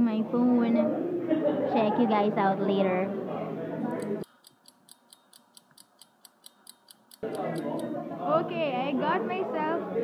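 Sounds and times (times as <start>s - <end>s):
cafe background noise: 0.8s - 10.0s
light high ticking: 3.9s - 7.9s.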